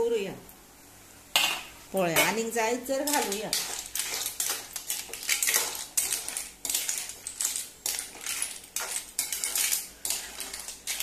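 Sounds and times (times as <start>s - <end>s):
metal spatula scraping in a pan: 2.2s - 11.0s.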